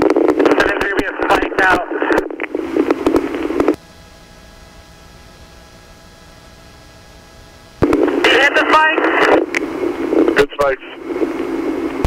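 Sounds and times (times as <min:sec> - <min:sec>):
radio static hiss: 0:00.0 - 0:04.3, 0:06.4 - 0:12.0
steady background hum with tones: 0:00.0 - 0:12.0.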